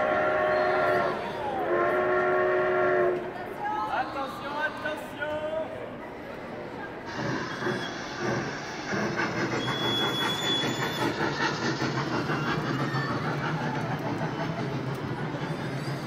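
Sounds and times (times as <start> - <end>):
kiddie train ride rolling: 6.1 - 16.0.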